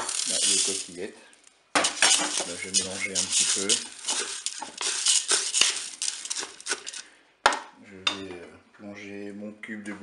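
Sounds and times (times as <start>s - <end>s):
wooden spatula stirring dry pasta: 0.0s - 7.1s.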